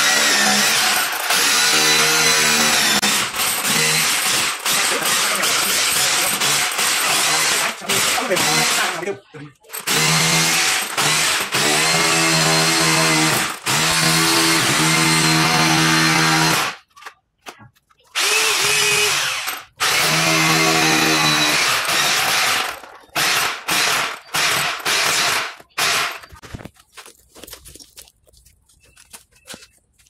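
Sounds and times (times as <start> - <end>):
hammer drill boring into wall: 0.0 - 9.0, 9.8 - 16.8, 18.2 - 26.4.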